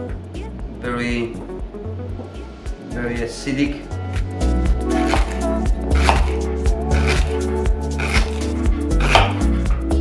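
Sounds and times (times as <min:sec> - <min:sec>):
background music with beat: 0:00.0 - 0:10.0
knife slicing on wooden board: 0:04.9 - 0:09.5.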